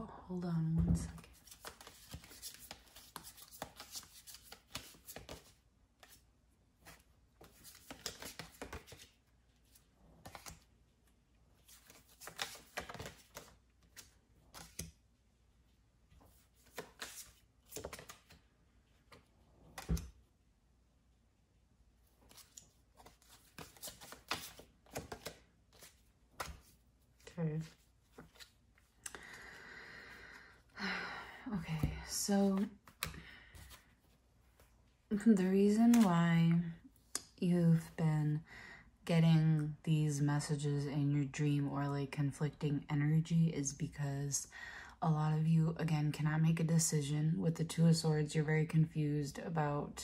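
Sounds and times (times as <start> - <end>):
cards being shuffled: 1.2 - 6.2, 6.8 - 10.7, 11.6 - 15.0, 16.2 - 18.4, 19.1 - 20.2, 22.1 - 29.1, 31.8 - 34.7, 35.6 - 36.2.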